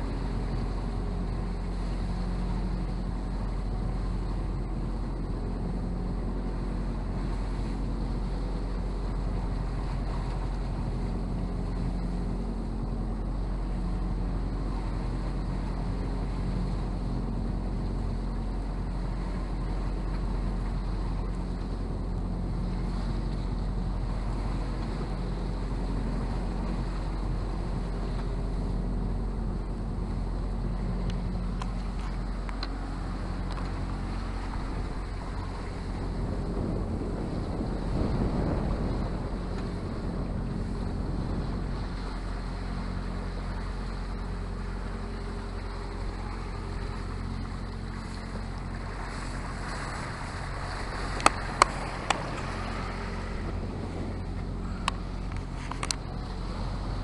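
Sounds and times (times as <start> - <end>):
steady low drone: 0.0 - 57.0
water rushing past hull: 0.0 - 57.0
wind buffeting microphone: 0.0 - 57.0.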